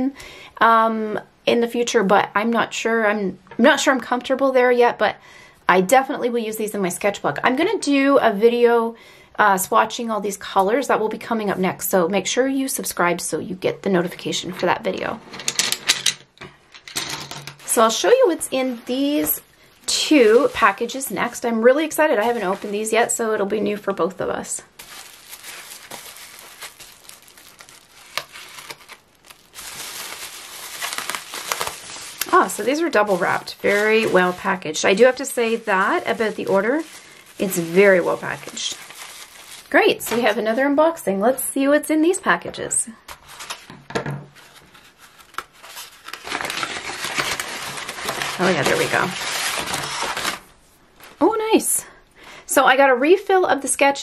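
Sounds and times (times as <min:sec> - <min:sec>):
bubble wrap crinkling: 0:17.6 - 0:40.8, 0:44.3 - 0:51.3.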